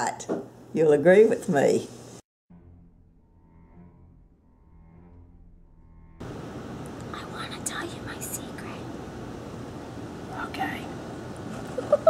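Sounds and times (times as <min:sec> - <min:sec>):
steady background hiss: 0:06.2 - 0:12.0
people whispering: 0:07.1 - 0:08.8.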